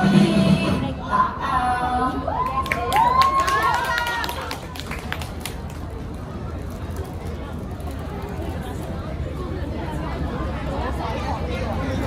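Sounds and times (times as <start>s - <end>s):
music: 0.0s - 2.2s.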